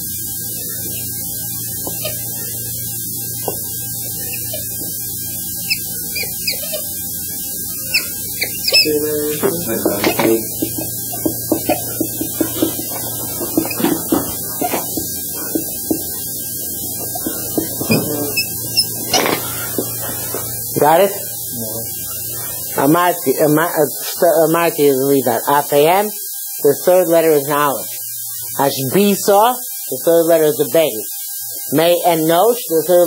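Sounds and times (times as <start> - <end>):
electrical hum: 0.0 - 33.0
marker squeaking on whiteboard: 0.8 - 21.2.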